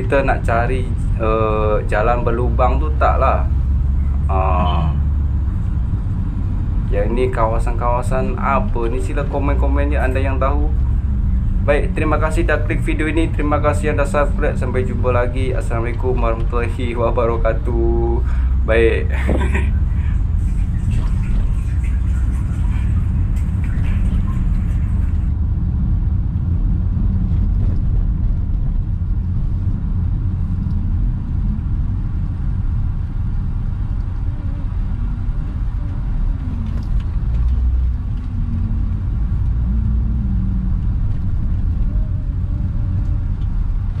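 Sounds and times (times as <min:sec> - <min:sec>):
car engine and tyres rumbling: 0:00.0 - 0:44.0.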